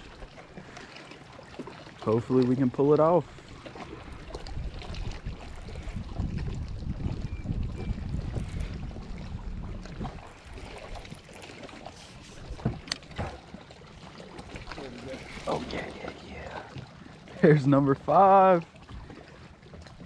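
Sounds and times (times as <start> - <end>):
wind buffeting microphone: 3.5 - 13.6.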